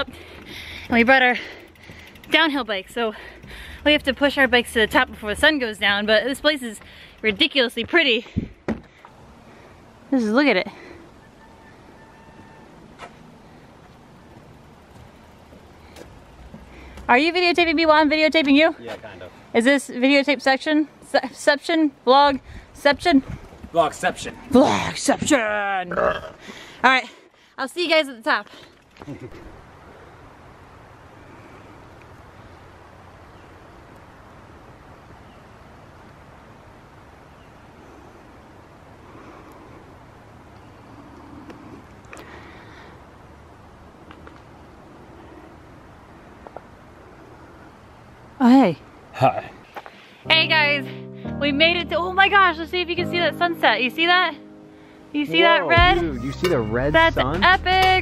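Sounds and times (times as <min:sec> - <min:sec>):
low outdoor rush in woods: 0:00.0 - 0:57.9.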